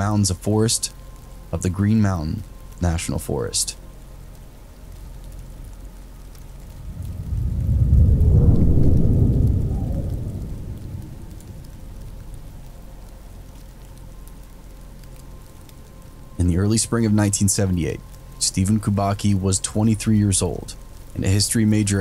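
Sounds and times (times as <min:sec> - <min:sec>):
steady rain: 0:00.0 - 0:22.0
low roll of thunder: 0:06.5 - 0:13.2.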